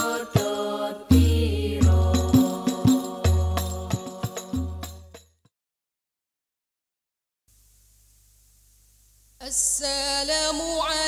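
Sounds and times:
voices singing in chant style: 0.0 - 5.0
frame drums: 0.0 - 5.3.

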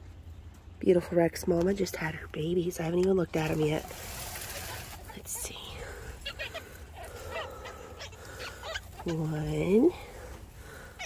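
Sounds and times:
rustling of hay: 3.4 - 11.0
rabbit kits squeaking: 4.6 - 10.0.

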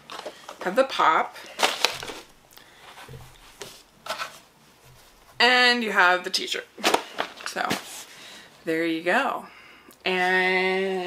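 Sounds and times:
soft handling rustles: 1.4 - 6.1.

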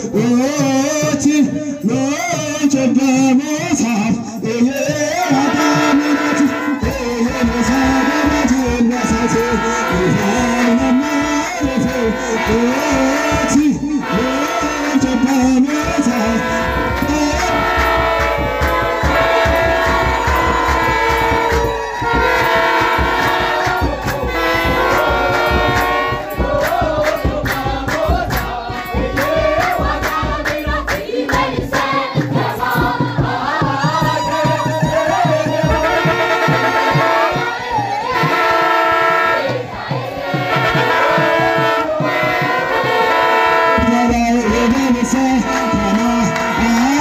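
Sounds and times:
deep rhythmic drum beat: 0.0 - 47.0
choir chanting a hymn in unison: 5.0 - 34.3, 34.9 - 47.0.

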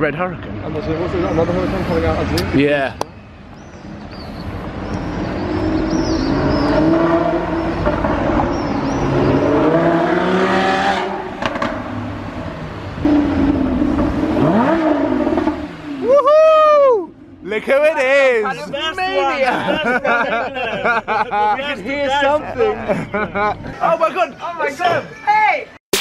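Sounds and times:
sports car engine accelerating: 4.8 - 16.1
loud engine rev: 5.2 - 12.1, 13.0 - 16.1.

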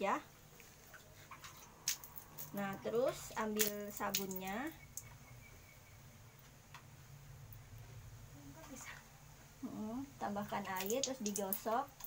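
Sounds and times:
water from hand washing: 0.6 - 5.1, 10.3 - 12.0.

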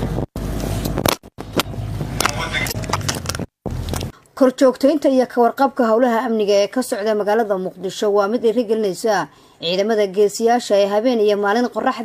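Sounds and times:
vehicle engines at low speed: 0.0 - 4.1
people's voices: 2.2 - 3.0.

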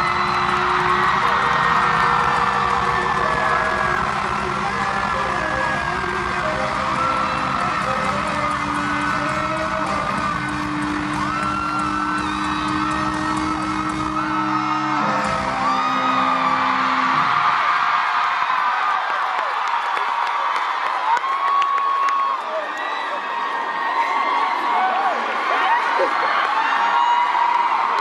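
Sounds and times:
crowd screaming: 0.0 - 28.0.

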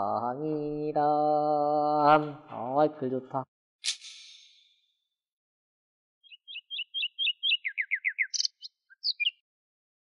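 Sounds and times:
songbird chirping: 6.2 - 9.4.

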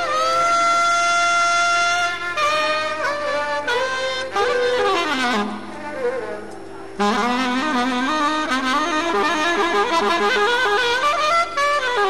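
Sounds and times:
saxophone long note: 0.0 - 12.0.

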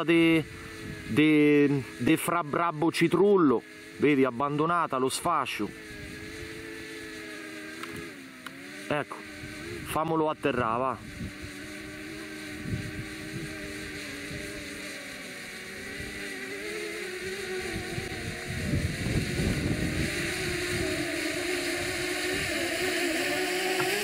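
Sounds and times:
drone propellers humming: 0.0 - 24.0.

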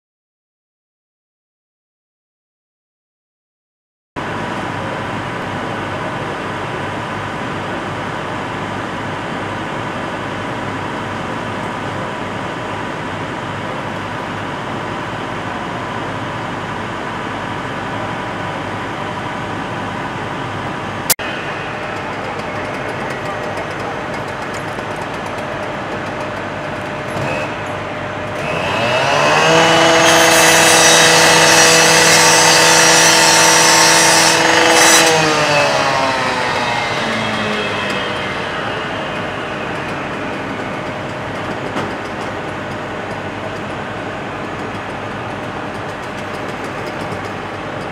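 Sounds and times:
engines droning: 4.2 - 47.9
cutoff saw cutting metal: 21.2 - 47.9.

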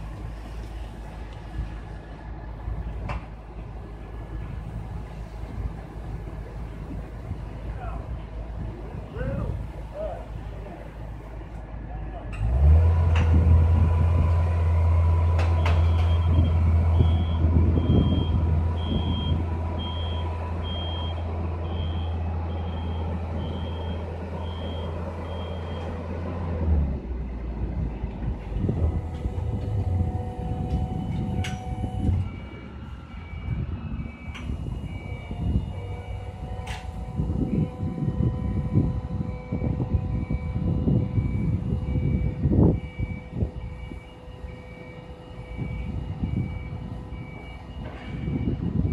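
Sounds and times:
motor low hum: 0.0 - 48.9
motion alarm beeping: 15.6 - 25.9, 39.4 - 48.9
lower-pitched warning beeper: 15.6 - 26.0, 30.1 - 48.9.

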